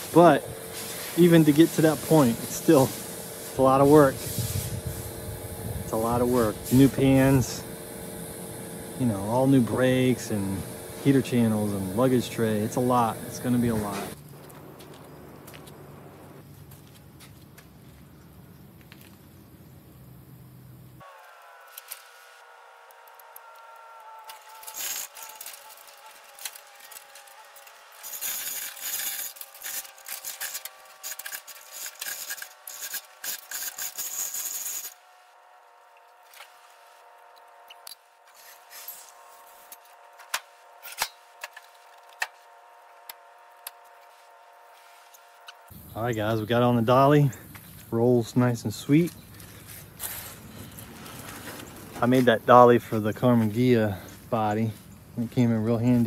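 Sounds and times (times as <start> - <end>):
hoist chains and metal rattling: 24.3 - 35.0.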